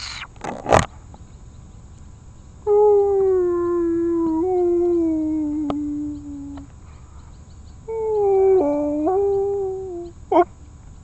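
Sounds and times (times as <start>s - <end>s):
puppy howling: 2.7s - 6.6s, 7.9s - 10.5s
puppy yelping: 7.9s - 10.5s.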